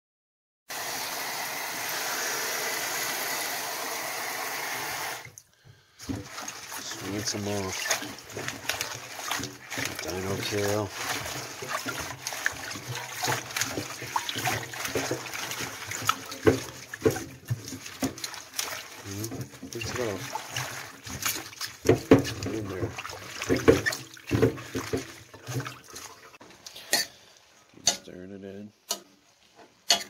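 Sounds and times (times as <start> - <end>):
water splashing: 5.1 - 26.4
hand swishing leaves in water: 6.0 - 26.4
tap water running into bowl: 6.0 - 26.4.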